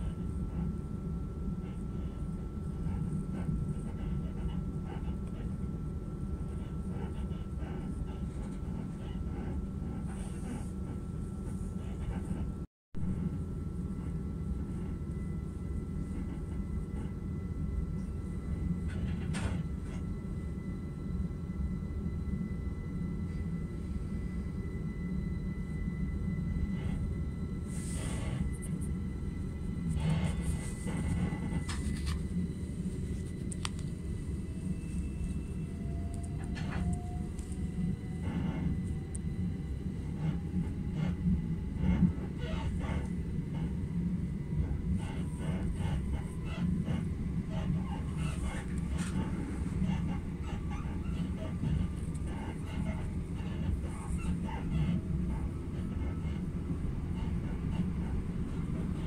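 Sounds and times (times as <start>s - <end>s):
faint train whine: 0.0s - 59.0s
train wheels rumbling on track: 27.6s - 59.0s.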